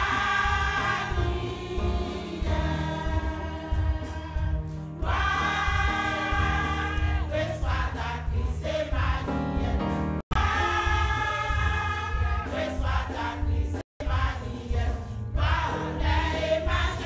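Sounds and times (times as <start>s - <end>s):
women's choir singing: 0.0s - 17.0s.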